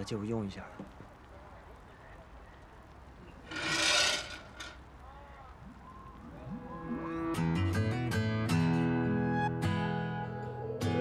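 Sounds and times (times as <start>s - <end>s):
low steady background noise: 0.0s - 7.2s
loud rasping rub: 3.5s - 4.8s.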